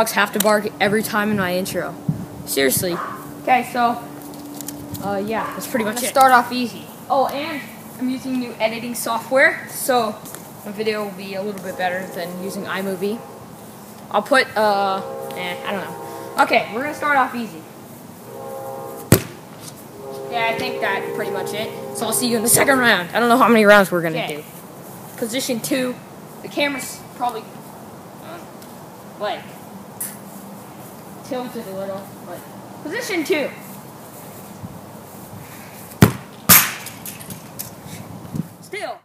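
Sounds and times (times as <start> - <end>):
background music: 14.5 - 17.6, 18.3 - 23.6
soccer ball kick thump: 36.0 - 36.3.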